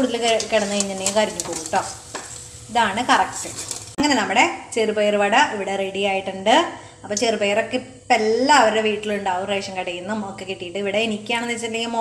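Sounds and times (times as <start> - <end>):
woman talking: 0.0 - 2.0, 2.7 - 12.0
strainer stirring in a pan: 0.0 - 4.0
food sizzling in frying oil: 0.0 - 4.1.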